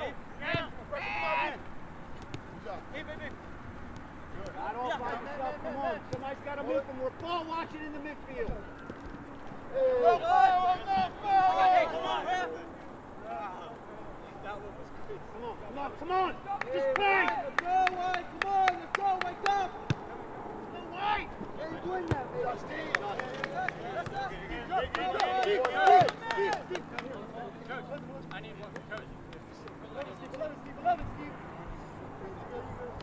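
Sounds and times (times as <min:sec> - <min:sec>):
players shouting: 0:00.0 - 0:01.7, 0:09.7 - 0:13.7, 0:15.4 - 0:27.3.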